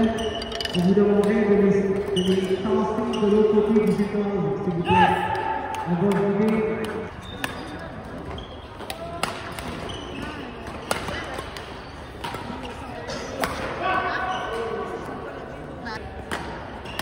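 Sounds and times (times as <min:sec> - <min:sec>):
people talking in background: 0:00.0 - 0:17.0
rackets hitting shuttlecock: 0:05.3 - 0:13.8, 0:16.2 - 0:17.0.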